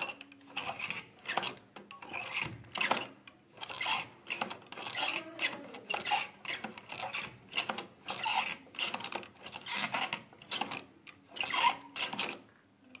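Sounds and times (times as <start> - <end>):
small hand pump squeaky strokes: 0.0 - 12.4.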